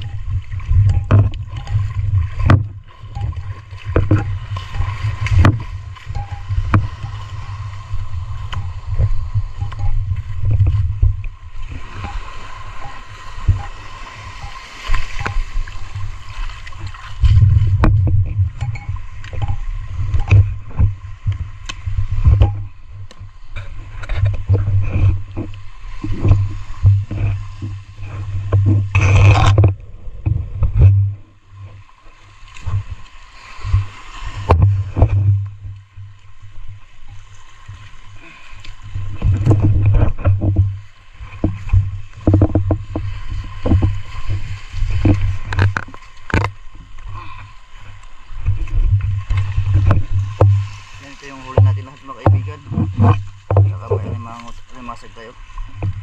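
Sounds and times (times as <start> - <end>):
underwater water surging: 0.0 - 56.0
small knocks: 39.2 - 44.0, 45.0 - 46.6, 51.4 - 54.6.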